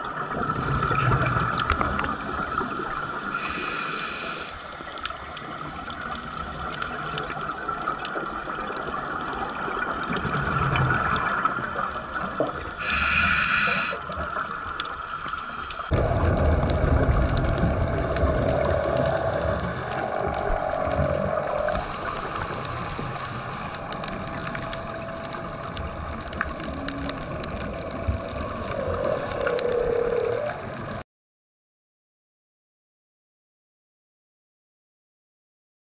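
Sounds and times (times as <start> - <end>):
underwater bubbles gurgling: 0.0 - 31.0
faint clicks: 3.4 - 10.9, 11.5 - 21.0, 21.7 - 31.0.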